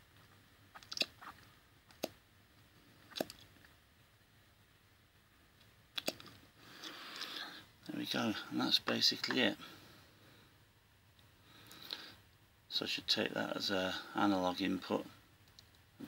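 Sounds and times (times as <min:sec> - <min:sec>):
mouth clicks and lip smacks: 0:00.7 - 0:02.2, 0:03.1 - 0:03.5, 0:05.9 - 0:06.3.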